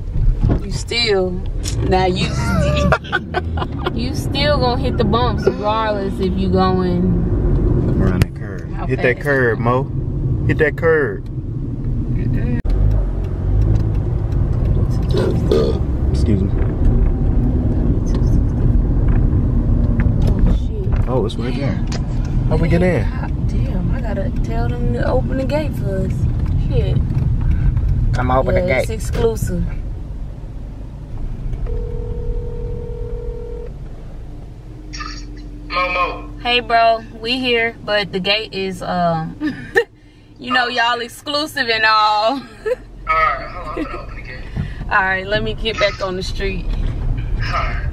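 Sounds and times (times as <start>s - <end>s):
car cabin road and engine rumble: 0.0s - 47.9s
voices: 0.6s - 7.2s, 14.9s - 16.5s, 20.6s - 27.0s, 28.2s - 29.8s, 34.9s - 39.8s, 40.4s - 46.7s, 47.4s - 47.9s
phone ringback tone: 31.7s - 33.7s.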